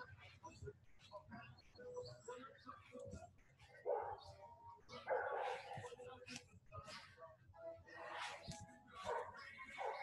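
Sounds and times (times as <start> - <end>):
dog barking faintly: 3.6 - 6.0, 8.9 - 10.0.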